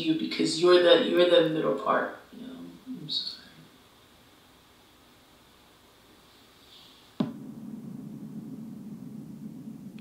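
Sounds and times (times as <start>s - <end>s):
cinematic boom: 7.2s - 10.0s
low sustained synth tone: 7.3s - 10.0s.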